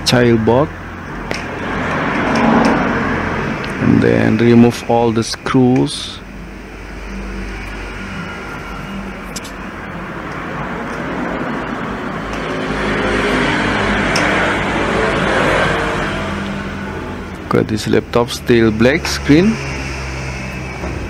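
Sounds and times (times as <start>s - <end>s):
road traffic rumble: 0.0s - 21.0s
vehicle passing: 0.0s - 21.0s.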